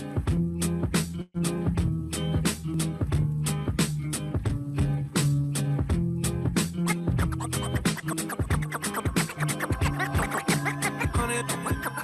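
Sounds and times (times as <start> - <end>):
music track with bass line: 0.0 - 12.0
turntable scratching: 6.6 - 12.0.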